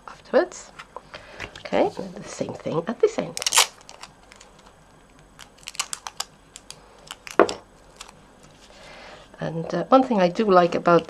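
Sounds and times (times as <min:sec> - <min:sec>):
sticky tape crackling and clicking: 0:03.3 - 0:08.6.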